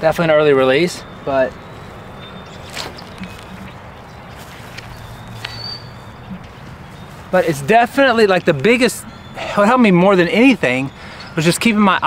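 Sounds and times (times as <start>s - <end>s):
faint high bird calls: 0.3s - 7.5s
footstep scuff: 2.7s - 3.7s, 4.3s - 5.6s.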